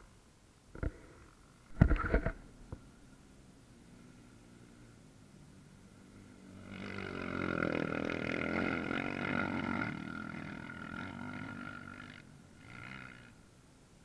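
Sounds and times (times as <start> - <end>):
quad engine passing and revving: 0.8 - 14.0.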